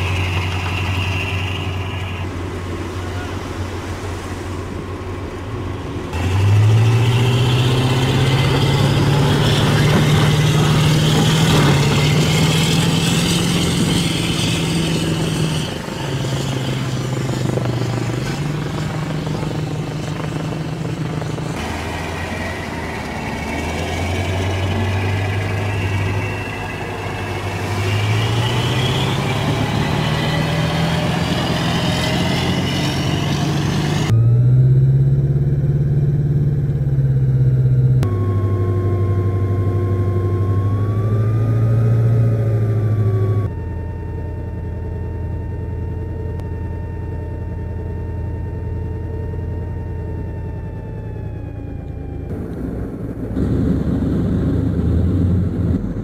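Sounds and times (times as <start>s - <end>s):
diesel engines running under load: 0.0s - 56.0s
thin whine: 0.0s - 56.0s.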